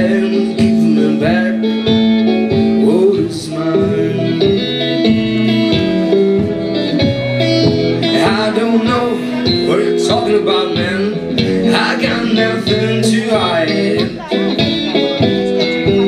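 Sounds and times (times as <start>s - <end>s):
electric blues guitar: 0.0s - 16.0s.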